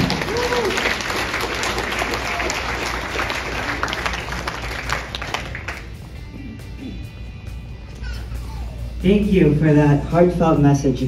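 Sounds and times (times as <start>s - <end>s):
audience applauding: 0.0s - 6.1s.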